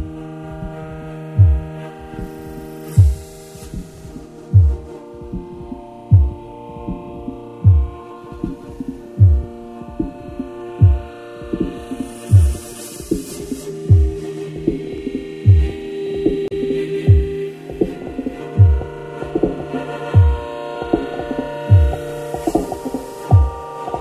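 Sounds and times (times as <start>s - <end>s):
sustained drone chord: 0.0s - 24.0s
deep low thumps: 1.4s - 1.7s, 3.0s - 13.2s, 13.9s - 17.9s, 18.6s - 19.6s, 20.2s - 20.4s, 21.7s - 22.7s.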